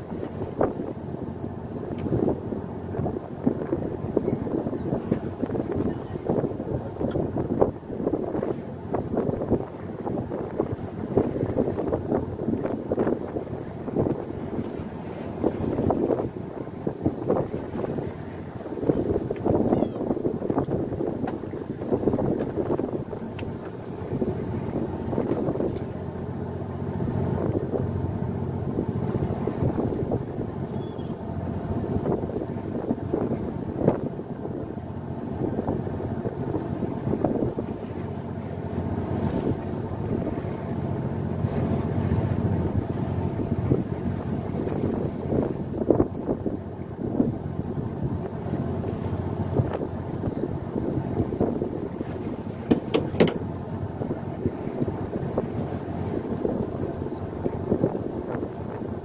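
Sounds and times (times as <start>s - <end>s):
boat engine humming: 0.0s - 59.0s
waves washing against hull: 0.0s - 59.0s
wind on microphone: 0.0s - 59.0s.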